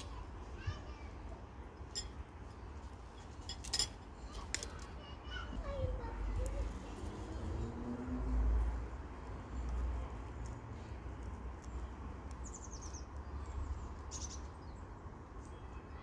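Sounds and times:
faint distant voices: 0.0s - 16.0s
stems snapping: 3.5s - 4.9s, 9.6s - 13.2s.

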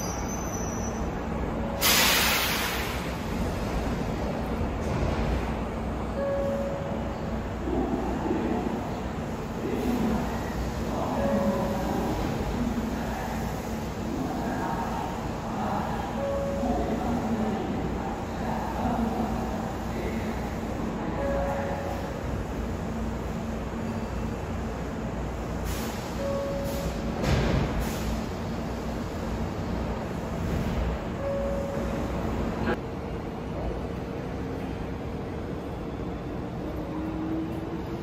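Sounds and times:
compressed air hiss from train: 1.8s - 3.5s, 25.6s - 27.0s, 27.7s - 28.3s.

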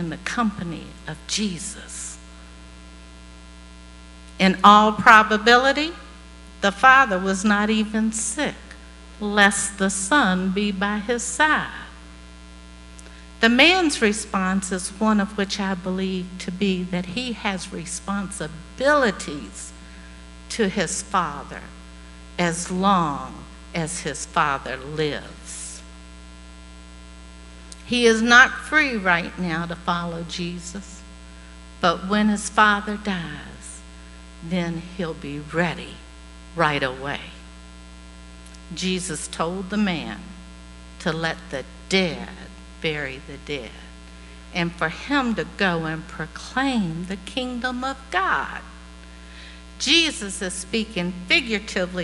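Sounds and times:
electrical mains hum: 0.0s - 52.0s.

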